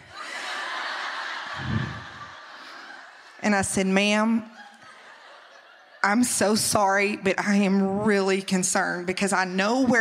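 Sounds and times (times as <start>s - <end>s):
low laugh: 0.0s - 3.2s
audience laughing: 0.0s - 3.4s, 4.5s - 6.2s.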